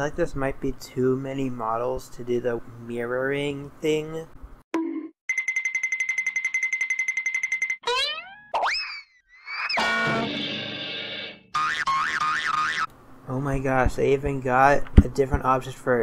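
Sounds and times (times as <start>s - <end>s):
warbling tone: 7.8s - 12.9s
rising boing: 7.9s - 10.5s
buzzy chord: 9.8s - 12.9s.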